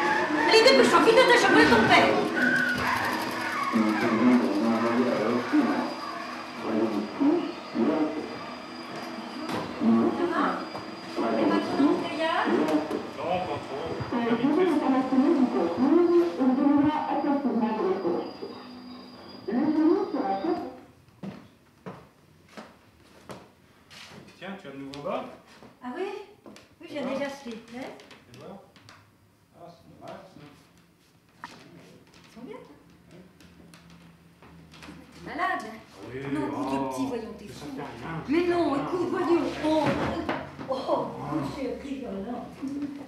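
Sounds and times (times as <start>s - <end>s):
vacuum cleaner humming: 0.0s - 18.5s
voices: 0.0s - 20.8s.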